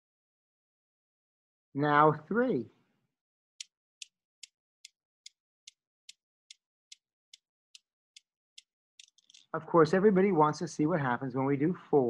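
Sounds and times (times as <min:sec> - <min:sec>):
steel balls clicking: 0:09.0 - 0:09.5.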